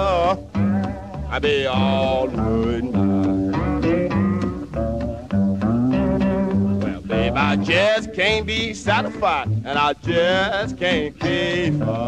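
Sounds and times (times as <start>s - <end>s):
man singing: 0.0s - 3.9s, 6.8s - 12.0s
blues slide guitar: 0.0s - 12.0s
plucked upright bass: 0.0s - 12.0s.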